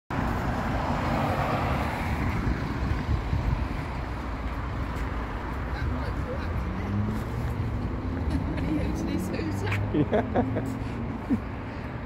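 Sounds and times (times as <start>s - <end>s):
passing cars: 0.1s - 12.0s.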